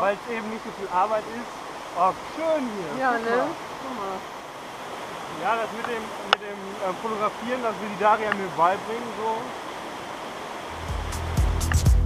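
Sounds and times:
water rushing in a creek: 0.0 - 11.9
music with heavy bass and beat: 10.8 - 12.0.

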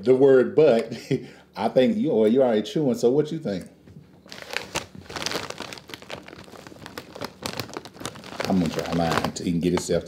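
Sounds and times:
chip bag crinkling: 4.3 - 10.0
chips pouring: 4.3 - 10.0.

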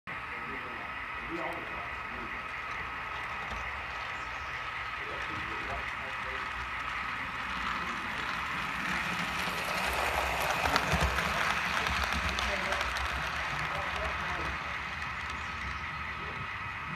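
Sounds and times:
model train high hum: 0.1 - 16.9
model train rumble and rail clatter: 0.1 - 16.9.

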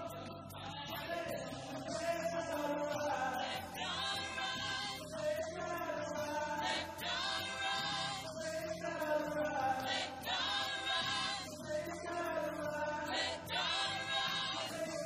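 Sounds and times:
gospel choir singing: 0.0 - 15.0
male lead vocalist singing: 0.0 - 15.0.

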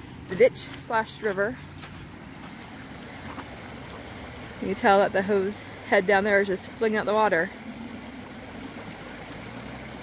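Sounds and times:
floodwater rushing down ditch: 0.0 - 10.0
low steady hum: 0.0 - 10.0
hose discharging water: 2.1 - 10.0.

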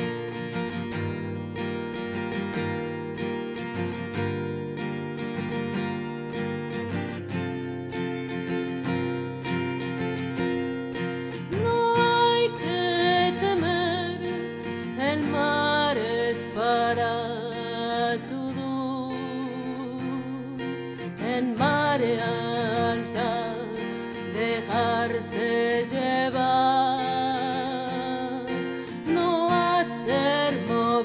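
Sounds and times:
acoustic guitar plucking: 0.0 - 31.0
woman singing with vibrato: 11.4 - 31.0.

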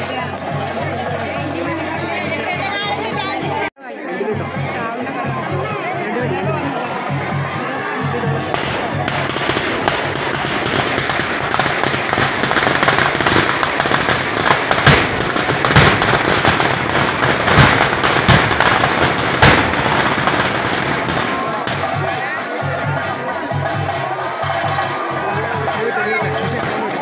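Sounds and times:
crowd noise: 0.0 - 27.0
firecrackers crackling: 8.3 - 27.0
loud bangs: 8.4 - 22.3.

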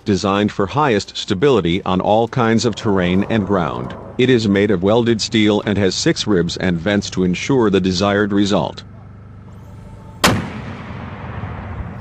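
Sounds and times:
rumbling echo: 1.9 - 9.5, 10.2 - 12.0
mortar firing blast: 10.2 - 12.0.

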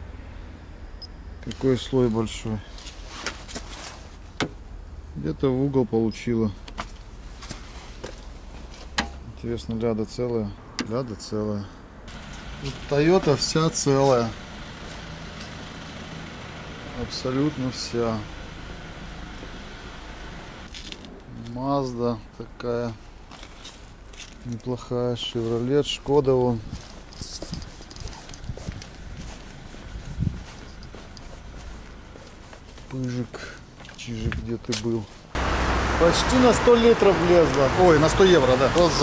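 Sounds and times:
light rustling: 26.4 - 35.3
steady low rumble: 26.6 - 32.8.

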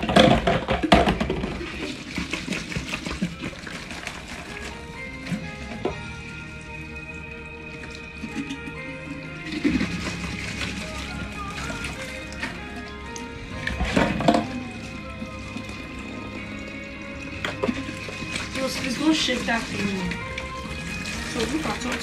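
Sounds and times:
plastic knocking against sink: 0.0 - 1.8
background music: 0.0 - 22.0.

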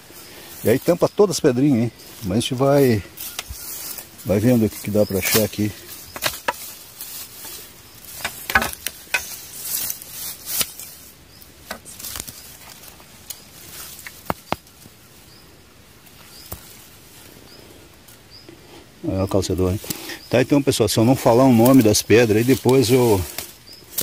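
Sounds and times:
rustling through grass and leaves: 0.0 - 24.0
clicks and scrapes among stones: 5.1 - 11.0.

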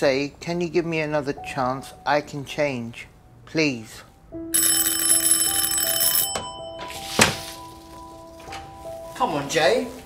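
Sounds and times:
electric doorbell ringing: 4.5 - 7.6.

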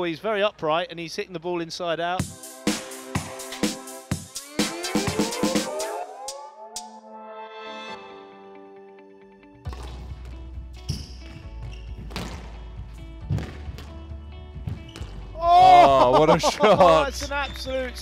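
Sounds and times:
held synthesizer tones: 4.4 - 7.5
squash ball hitting rackets and walls: 9.7 - 15.4.

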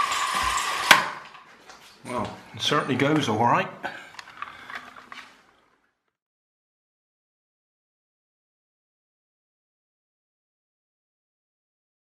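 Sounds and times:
plastic toy car clicking on wooden floor: 0.0 - 1.4.

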